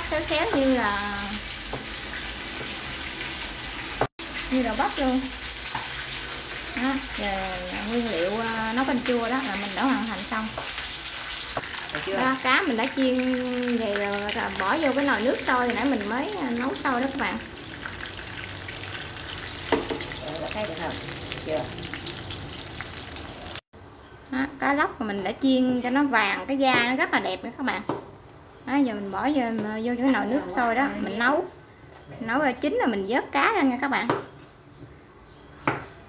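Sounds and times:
oil sizzling in a frying pan: 0.0s - 23.6s
pot of water boiling: 0.0s - 23.6s.

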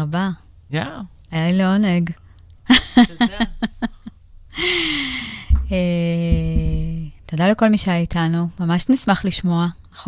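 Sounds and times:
woman's breathy sigh: 4.5s - 5.6s.

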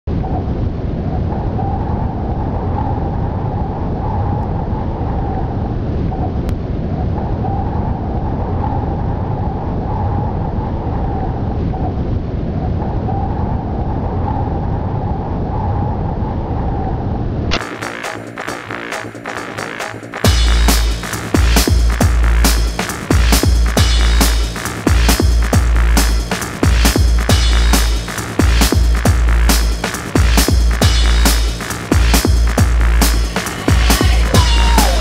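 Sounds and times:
loud rumbling with droning tone: 0.0s - 35.0s
music with a beat: 17.6s - 35.0s.

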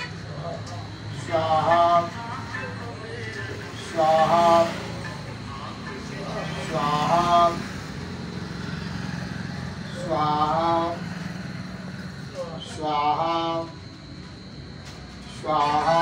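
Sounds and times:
man chanting: 0.0s - 8.6s, 9.4s - 11.3s, 12.2s - 13.9s, 15.2s - 16.0s.

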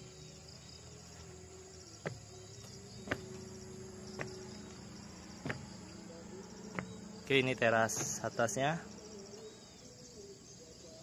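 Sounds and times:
insect chorus: 0.0s - 11.0s
footsteps on wooden stairs: 2.0s - 5.9s, 6.7s - 7.1s, 7.7s - 8.4s.

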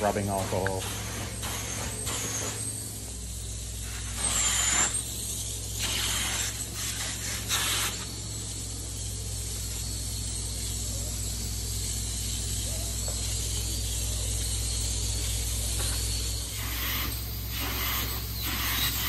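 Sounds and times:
low machine hum: 0.0s - 19.0s
short hissing bursts: 0.0s - 19.0s.

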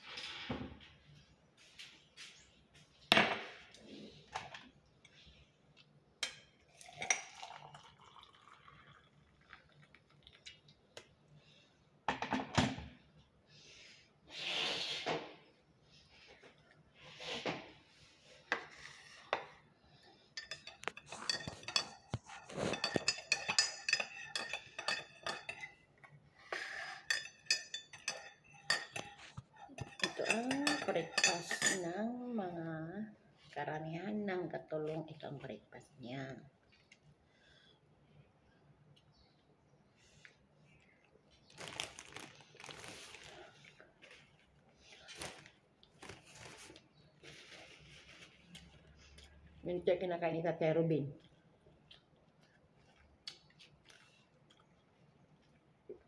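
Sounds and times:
quiet eating noises: 3.7s - 12.0s, 18.0s - 31.9s, 36.5s - 49.7s, 51.1s - 56.0s
metal spoon clinking in ceramic mug: 20.4s - 25.7s, 27.0s - 31.8s
paper napkin rustling: 41.5s - 48.5s.

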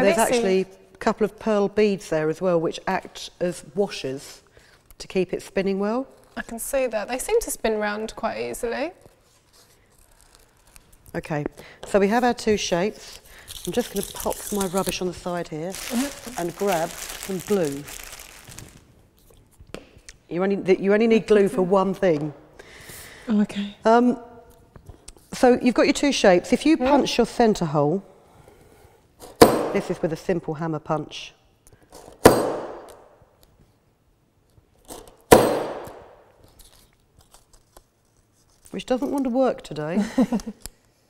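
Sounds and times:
paper rustling and crinkling: 8.9s - 11.3s, 13.0s - 19.6s, 36.4s - 39.1s
hammer punch metallic clang: 32.2s - 32.9s, 35.3s - 35.9s.

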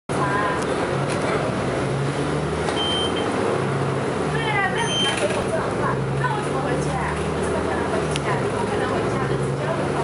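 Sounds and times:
bus engine drone: 0.1s - 10.0s
road and body noise: 0.1s - 10.0s.

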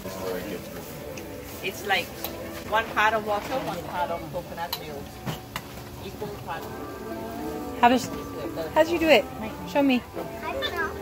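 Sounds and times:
quiet talking: 0.0s - 11.0s.

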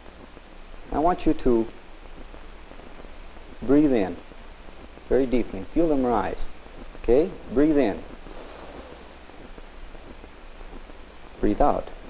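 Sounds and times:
film soundtrack hiss and hum: 0.0s - 12.0s
man inhaling through nose: 8.2s - 9.2s.

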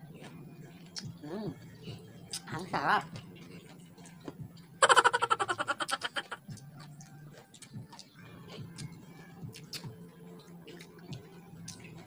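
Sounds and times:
chewing clicks and smacks: 0.1s - 1.2s, 2.3s - 2.5s, 3.1s - 4.7s, 5.9s - 12.0s.

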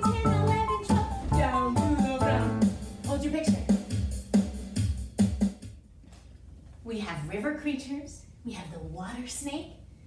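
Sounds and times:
dance music with drum beat and bass: 0.0s - 5.6s.

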